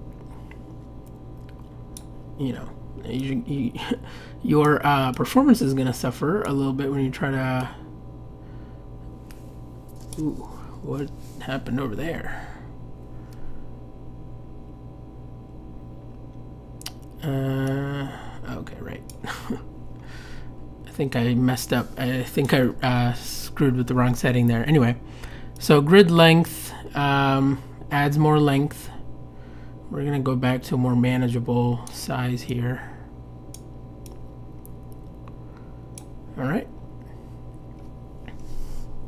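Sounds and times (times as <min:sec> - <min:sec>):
low electrical hum: 0:00.0 - 0:39.0.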